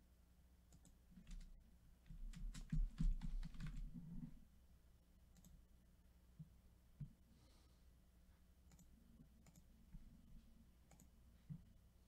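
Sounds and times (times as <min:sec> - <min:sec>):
typing on keyboard: 0:00.7 - 0:04.0.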